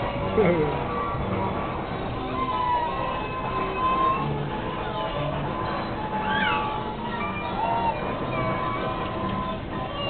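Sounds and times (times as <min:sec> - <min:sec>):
carousel music: 0:00.0 - 0:10.0
small child squealing: 0:02.4 - 0:04.3, 0:06.2 - 0:08.9.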